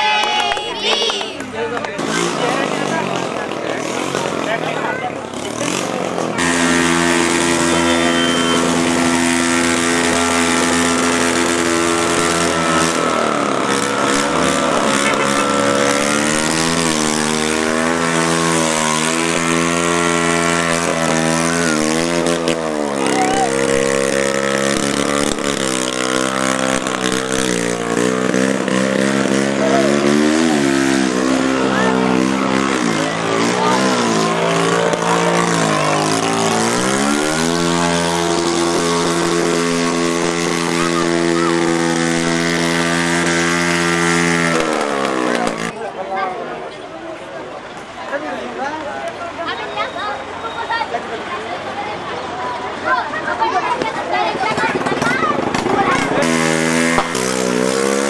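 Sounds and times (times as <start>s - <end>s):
motorcycle engine revving: 1.4s - 46.6s, 53.9s - 58.0s.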